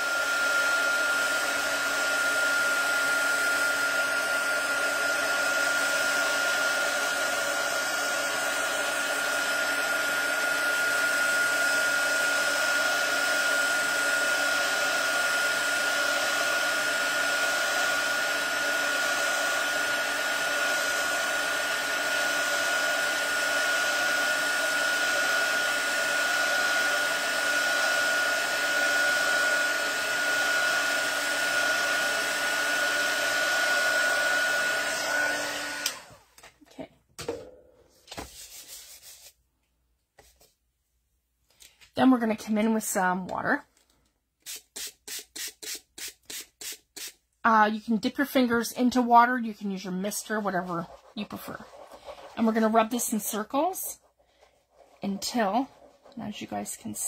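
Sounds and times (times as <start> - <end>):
heat tool blowing air: 0.0 - 36.2.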